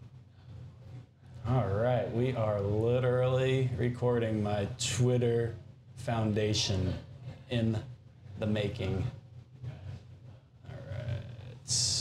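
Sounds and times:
low steady hum: 0.0s - 12.0s
man talking: 1.4s - 9.2s, 10.7s - 12.0s.

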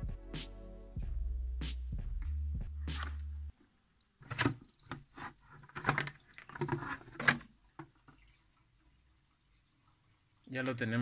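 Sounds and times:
water splashing and dripping: 4.2s - 11.0s.

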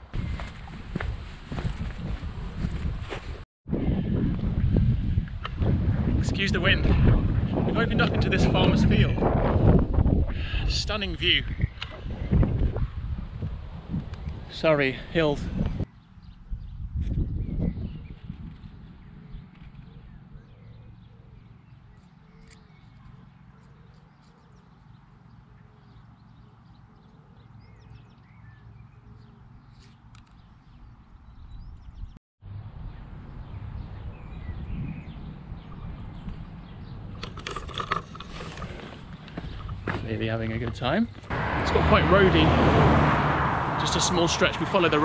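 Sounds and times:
wind buffeting microphone: 0.0s - 23.4s, 30.4s - 45.0s.

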